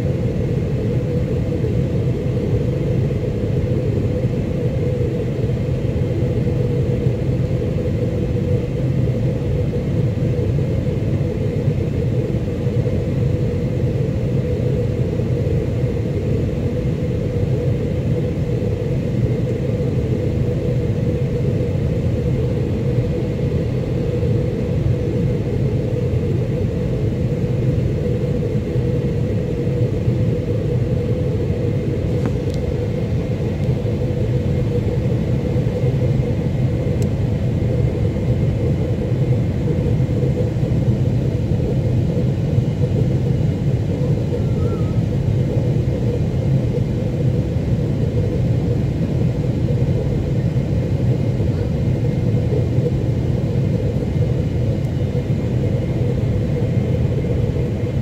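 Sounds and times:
faint high whine: 0.0s - 58.0s
jet engine rumble: 0.0s - 58.0s.

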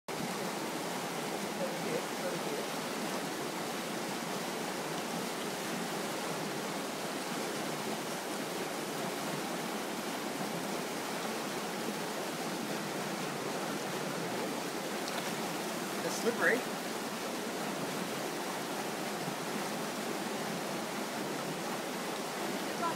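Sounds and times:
stream water rushing: 0.1s - 22.9s.

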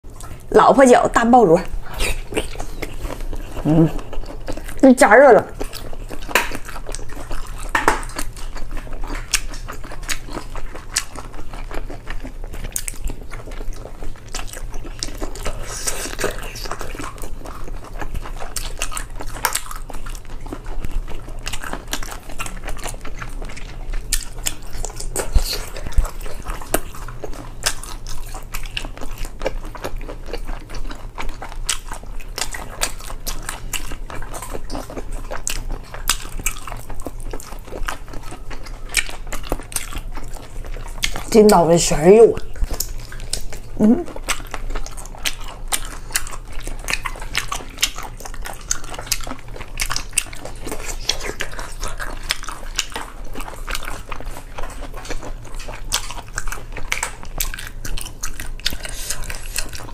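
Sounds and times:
biting and chewing: 0.0s - 59.9s
mouth clicks and smacks: 1.8s - 4.8s.

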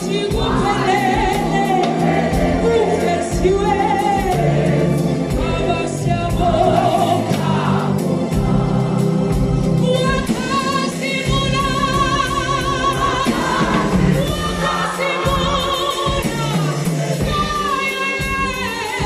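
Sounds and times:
gospel choir singing in harmony: 0.0s - 19.0s.

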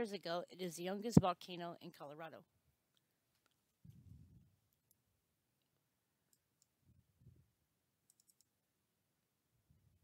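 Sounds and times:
computer mouse clicks: 8.1s - 8.6s.

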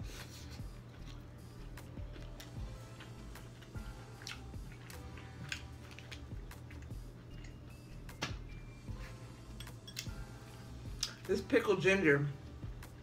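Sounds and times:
wet eating and chewing sounds: 0.0s - 8.2s.

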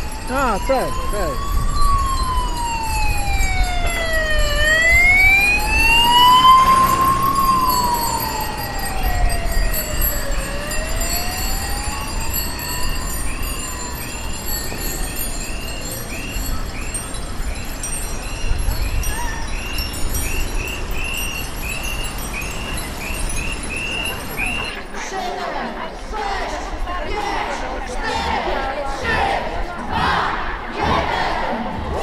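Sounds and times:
siren wailing: 0.0s - 16.2s.

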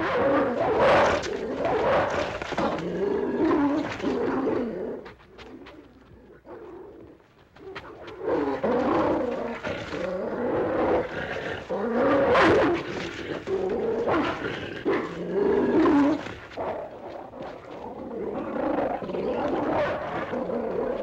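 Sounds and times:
large dog snarling and growling: 0.0s - 21.0s.

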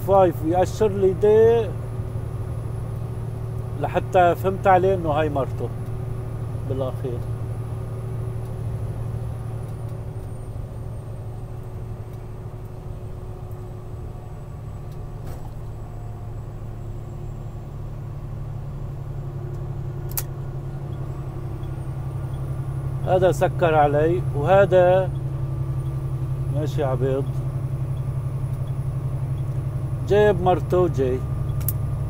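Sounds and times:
truck engine and road drone: 0.0s - 32.0s
brief click: 20.1s - 20.3s.

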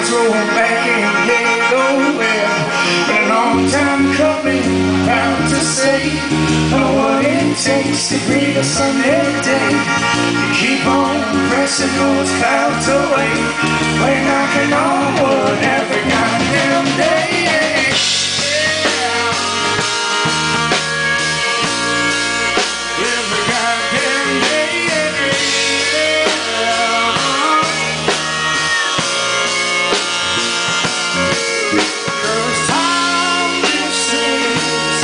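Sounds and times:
live rock band playing: 0.0s - 35.0s
steel guitar sliding: 0.9s - 35.0s.

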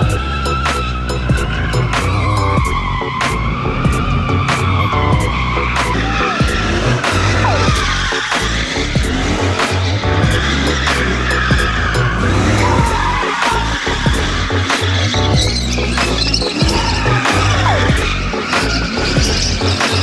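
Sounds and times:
music with a steady beat: 0.0s - 20.0s
tyres squealing: 0.0s - 20.0s.

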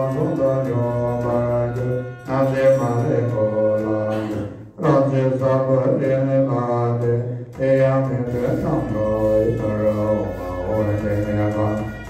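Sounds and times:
monks chanting in unison: 0.0s - 12.0s.

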